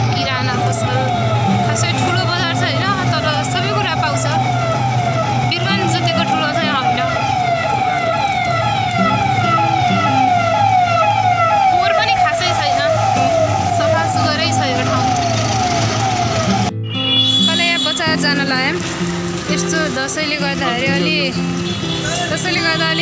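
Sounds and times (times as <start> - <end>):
electronic siren warning tone: 0.0 - 18.5.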